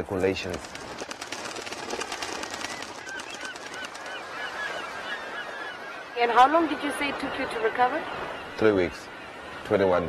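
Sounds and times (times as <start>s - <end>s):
steady crackling hiss: 0.0s - 7.0s
water birds calling: 0.0s - 10.0s.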